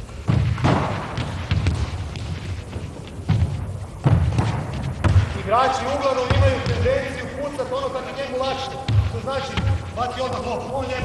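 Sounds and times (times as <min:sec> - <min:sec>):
ball bouncing on wooden floor: 0:00.3 - 0:05.4, 0:06.2 - 0:07.2, 0:08.8 - 0:09.9
wordless voices: 0:05.3 - 0:11.0.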